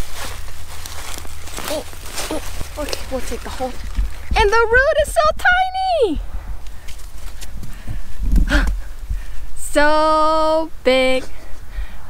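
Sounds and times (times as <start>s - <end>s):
leaves rustling as plant pulled: 0.0s - 4.5s
wind rumble on microphone: 0.0s - 12.0s.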